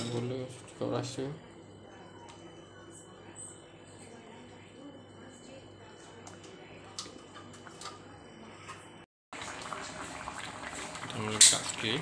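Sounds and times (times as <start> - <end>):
stew bubbling in a wok: 9.3 - 12.0.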